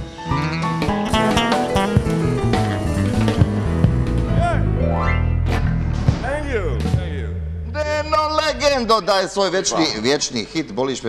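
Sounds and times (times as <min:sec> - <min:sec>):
live band playing instrumental: 0:00.0 - 0:04.9.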